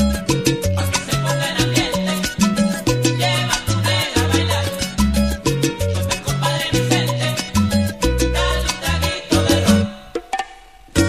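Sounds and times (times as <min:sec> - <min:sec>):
salsa band instrumental: 0:00.0 - 0:11.0.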